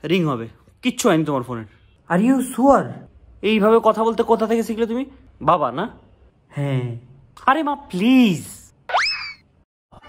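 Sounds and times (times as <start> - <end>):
cartoon pitch-bending sound: 8.9 - 9.5.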